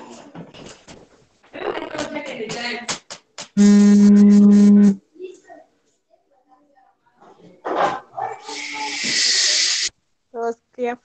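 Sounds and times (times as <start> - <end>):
loud steady hiss: 8.4 - 9.9.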